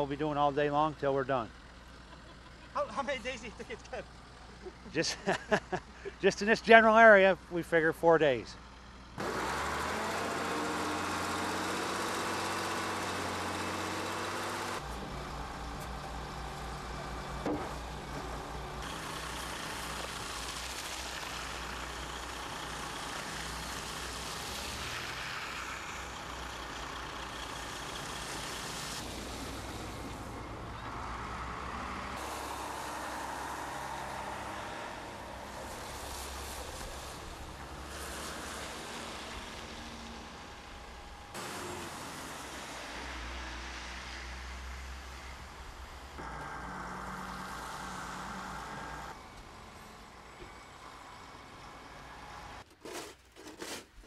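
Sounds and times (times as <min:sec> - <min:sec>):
diesel engines working: 0:00.0 - 0:52.7.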